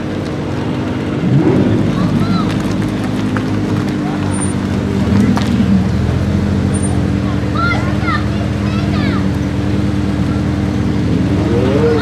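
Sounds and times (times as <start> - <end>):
car engines idling: 0.0 - 12.0
crowd chattering: 0.0 - 12.0.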